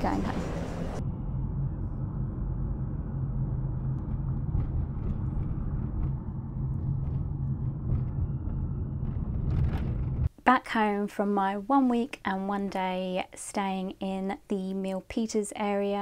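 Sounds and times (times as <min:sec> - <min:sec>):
engine and road noise in cabin: 0:00.0 - 0:10.3.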